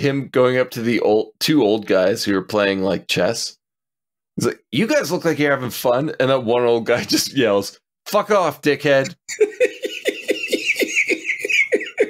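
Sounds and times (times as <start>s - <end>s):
man laughing: 6.9s - 7.4s, 9.1s - 12.0s.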